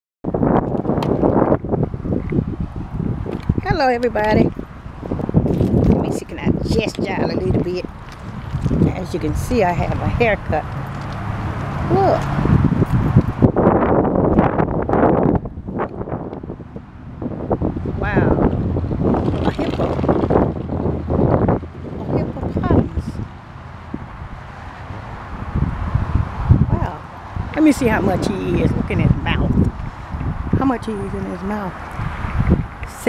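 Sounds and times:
wind buffeting microphone: 0:00.2 - 0:33.0.

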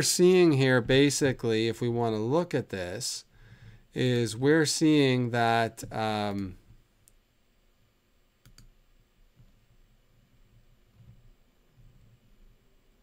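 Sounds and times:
computer mouse double click: 0:08.4 - 0:08.7.

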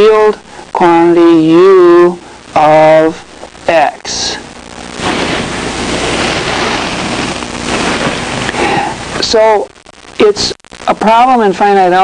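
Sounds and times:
loud static rushing noise: 0:00.0 - 0:12.0.

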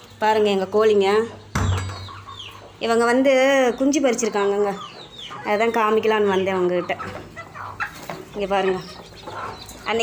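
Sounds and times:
chickens calling: 0:00.0 - 0:10.0.

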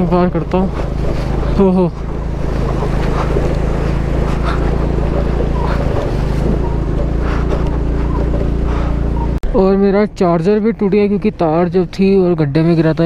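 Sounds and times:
scooter engine running: 0:00.0 - 0:13.0
tyres on gravel road noise: 0:00.0 - 0:13.0.

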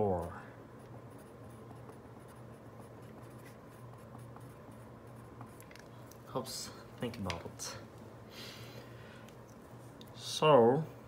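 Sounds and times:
pen scratching on paper: 0:01.1 - 0:05.7.

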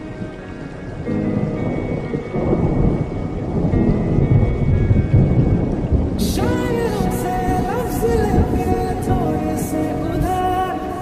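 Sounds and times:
background music: 0:00.0 - 0:11.0
thunder rumbling: 0:00.0 - 0:11.0.

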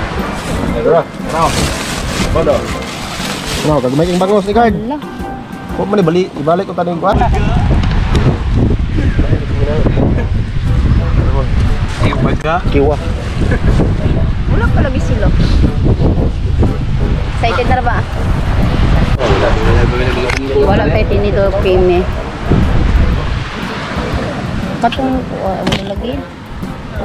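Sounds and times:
people's voices: 0:00.0 - 0:27.0
people talking: 0:00.6 - 0:05.1, 0:05.8 - 0:07.8, 0:09.0 - 0:15.7, 0:17.4 - 0:18.1, 0:19.0 - 0:22.2, 0:23.6 - 0:26.3
low rumble: 0:07.2 - 0:26.5.

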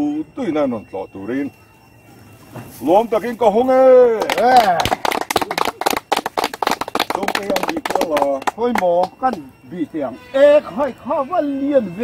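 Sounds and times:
people clapping: 0:04.1 - 0:09.5.

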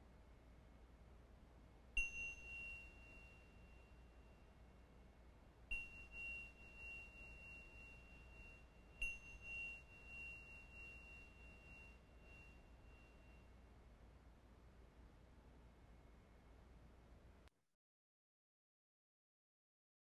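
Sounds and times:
tingsha cymbals ringing: 0:02.0 - 0:04.1, 0:05.7 - 0:13.5.

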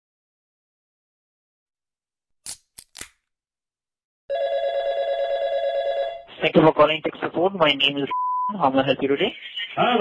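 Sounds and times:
telephone ring tone: 0:04.3 - 0:06.3.

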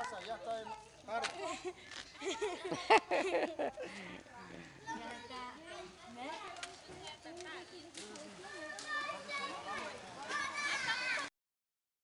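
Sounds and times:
people chattering: 0:00.0 - 0:11.3
children's voices: 0:04.4 - 0:11.3.

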